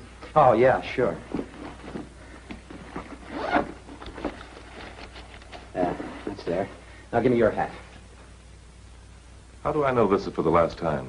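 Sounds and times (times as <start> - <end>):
rustling: 0.2 - 6.9.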